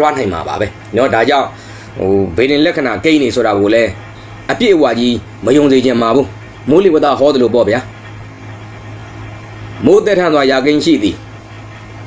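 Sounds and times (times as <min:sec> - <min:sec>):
man talking: 0:00.0 - 0:07.9, 0:09.8 - 0:11.2
low electrical hum: 0:00.0 - 0:12.0.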